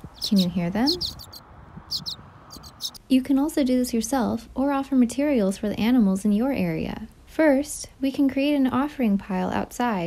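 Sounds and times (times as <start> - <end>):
baby birds chirping: 0.0 - 3.0.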